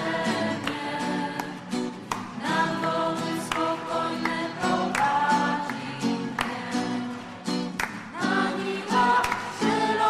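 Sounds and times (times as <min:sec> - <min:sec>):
group singing a hymn: 0:00.0 - 0:10.0
strummed acoustic guitar: 0:00.0 - 0:10.0.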